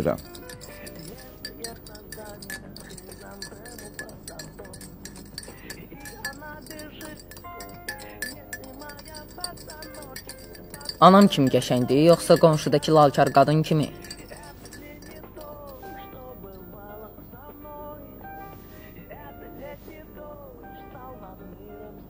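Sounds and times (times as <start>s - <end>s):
glasses and dishes clinking: 0.0s - 17.3s
music: 0.0s - 22.0s.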